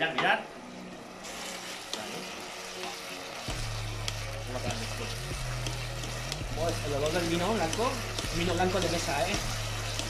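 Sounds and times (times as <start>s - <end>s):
vegetables sizzling in a pot: 0.0s - 10.0s.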